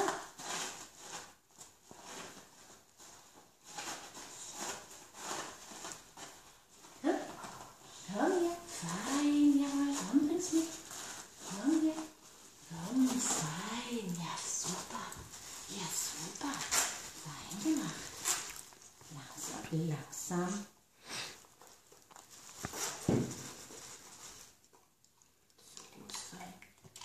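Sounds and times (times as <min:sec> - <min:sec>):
crumpled paper crinkling: 0:00.0 - 0:20.7, 0:21.3 - 0:27.0.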